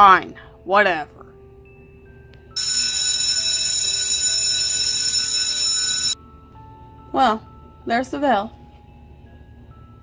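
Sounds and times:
faint background music: 0.0s - 10.0s
school bell ringing: 2.6s - 6.2s.

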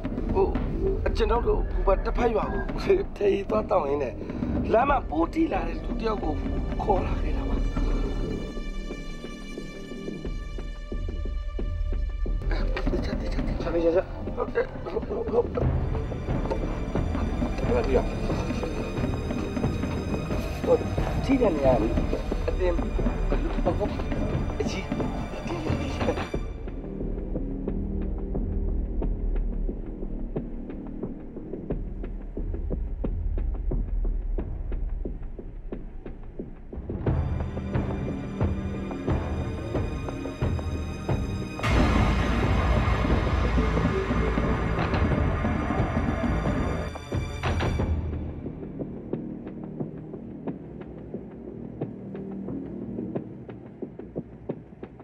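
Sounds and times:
low throbbing drone: 0.0s - 54.0s.

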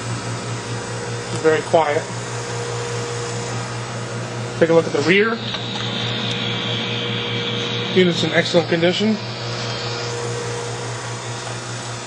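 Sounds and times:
centrifuge humming with high whine: 0.0s - 12.0s.

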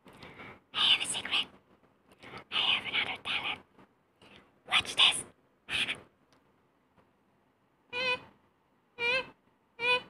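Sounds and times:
woman whispering: 0.7s - 1.6s, 2.4s - 3.7s, 4.6s - 6.1s.

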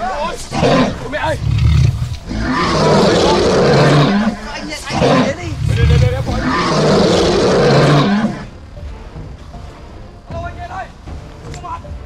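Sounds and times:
monster growling roar: 0.5s - 8.5s.

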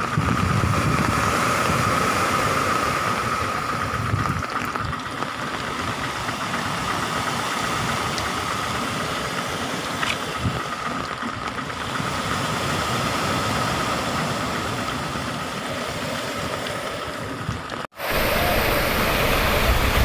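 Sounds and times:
wind rumbling on microphone: 0.0s - 20.0s
storm rain: 17.4s - 20.0s
high-pitched whine: 18.0s - 20.0s.

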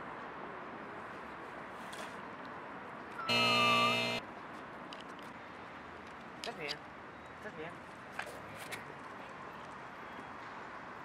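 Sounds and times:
wrong answer buzzer: 3.3s - 4.2s.

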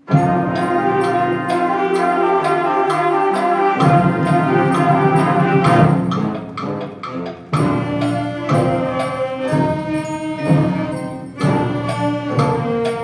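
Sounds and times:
concert band playing: 0.0s - 13.0s.

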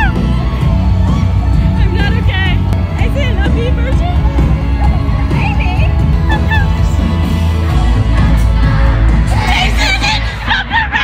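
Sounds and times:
live pop concert music: 0.0s - 11.0s
crowd singing along: 6.0s - 11.0s.

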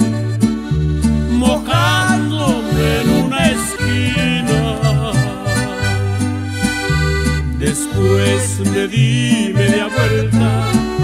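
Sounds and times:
accordion melody: 0.0s - 11.0s
guitarron bass line: 0.0s - 11.0s
strummed guitar chords: 0.0s - 11.0s.

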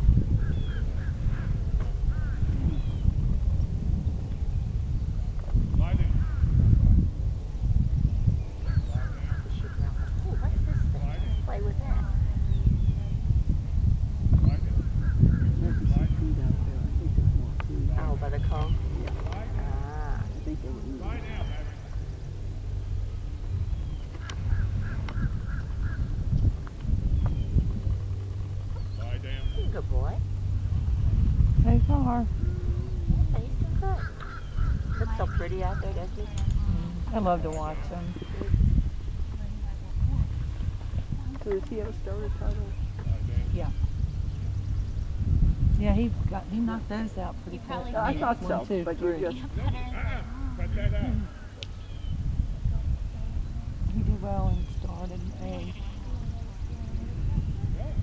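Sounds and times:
wind rumbling on microphone: 0.0s - 58.0s
faint voices: 8.6s - 13.3s, 14.4s - 23.4s, 31.6s - 44.6s, 45.8s - 58.0s.

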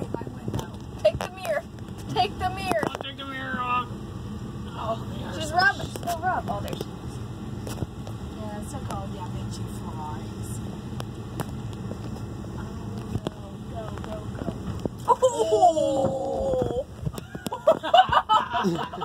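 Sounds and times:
van engine idling: 0.0s - 19.0s.

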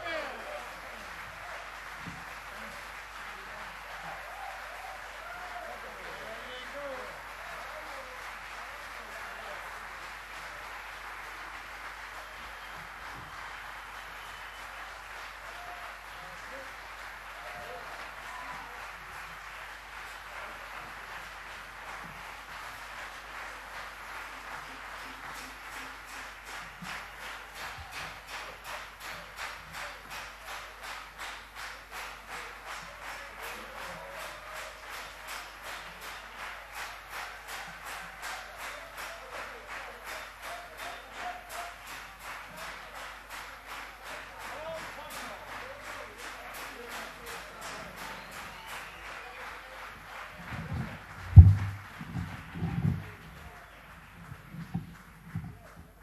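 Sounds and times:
audience applauding: 0.0s - 56.0s
rhythmic clapping in unison: 0.0s - 56.0s.

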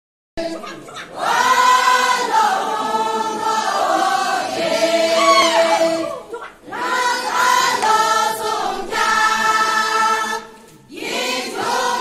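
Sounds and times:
large crowd singing in chorus: 0.4s - 12.0s.

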